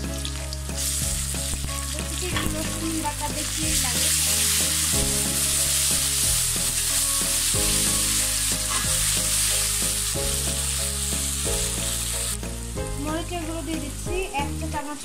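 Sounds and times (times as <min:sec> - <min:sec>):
vegetables sizzling in hot oil: 0:00.0 - 0:12.7
spatula stirring in wok: 0:03.4 - 0:12.4.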